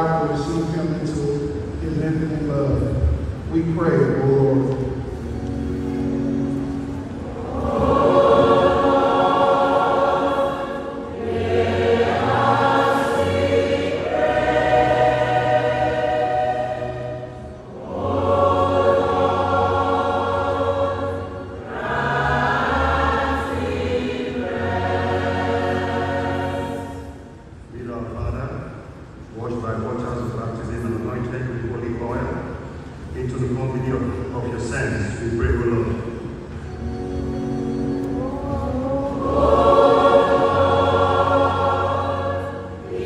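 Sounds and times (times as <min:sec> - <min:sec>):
church choir singing: 0:00.0 - 0:28.0, 0:33.7 - 0:43.0.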